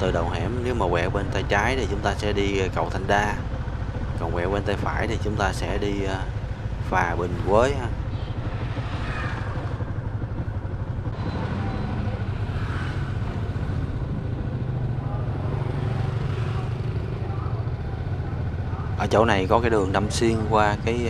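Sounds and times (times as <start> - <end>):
motorbike engine rumbling: 0.0 - 21.0.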